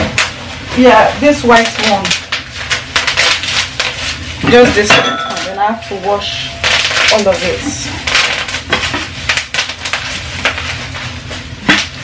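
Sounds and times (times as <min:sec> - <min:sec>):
plastic wrapping rustling: 0:00.0 - 0:12.0
pots and lids clinking: 0:04.5 - 0:07.6.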